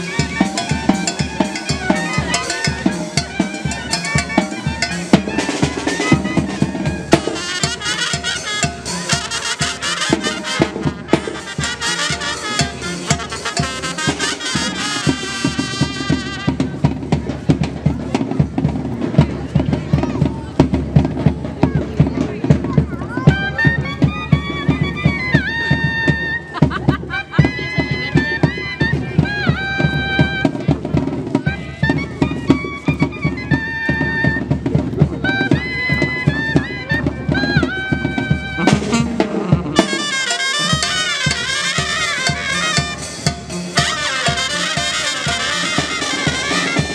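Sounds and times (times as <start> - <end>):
high wind instrument: 0.0 - 17.1, 23.1 - 46.9
fast drumbeat: 0.0 - 46.9.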